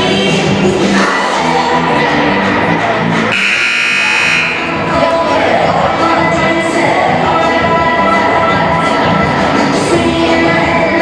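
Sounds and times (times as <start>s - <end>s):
music playing: 0.0s - 11.0s
scoreboard buzzer: 3.3s - 4.7s.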